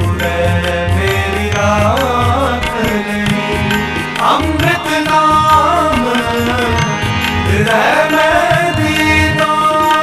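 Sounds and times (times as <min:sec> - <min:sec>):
harmonium: 0:00.0 - 0:10.0
man singing devotional song: 0:00.0 - 0:10.0
tabla strokes: 0:00.0 - 0:10.0.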